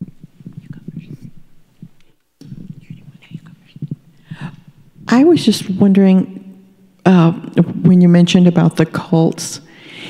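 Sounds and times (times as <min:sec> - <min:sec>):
microphone handling noise: 0:00.0 - 0:05.2.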